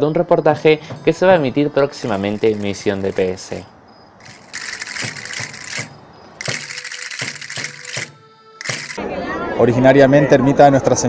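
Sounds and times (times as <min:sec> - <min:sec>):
drum strokes: 0:02.0 - 0:03.6, 0:04.2 - 0:09.0
castanets clattering: 0:02.0 - 0:09.0.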